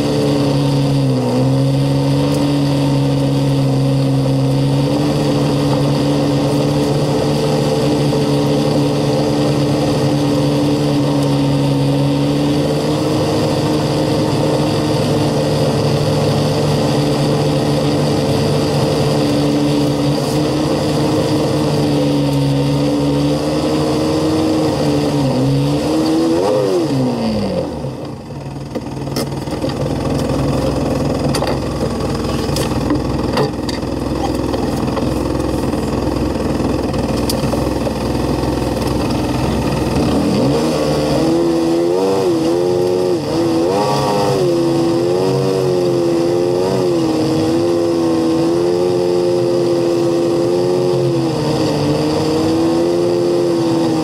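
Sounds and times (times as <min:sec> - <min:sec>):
engine revving: 0:00.0 - 0:54.0.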